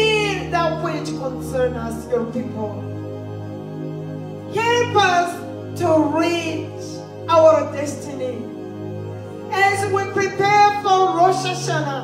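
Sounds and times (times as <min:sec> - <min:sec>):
background music with low chords: 0:00.0 - 0:12.0.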